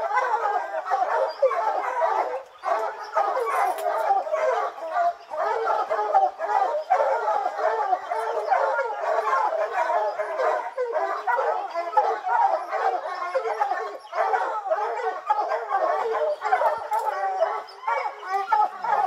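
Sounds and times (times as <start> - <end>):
hounds baying and barking: 0.0 - 19.0.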